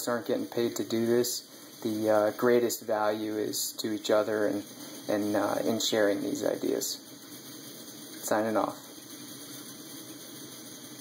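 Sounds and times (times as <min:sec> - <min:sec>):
stove burner flame hissing: 0:00.0 - 0:11.0.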